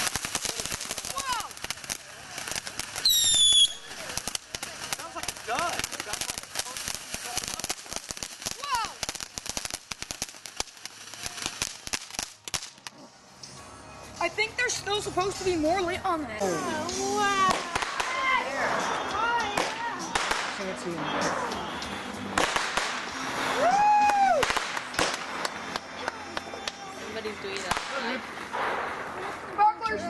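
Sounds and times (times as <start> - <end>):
firework sparks crackling: 0.0 - 30.0.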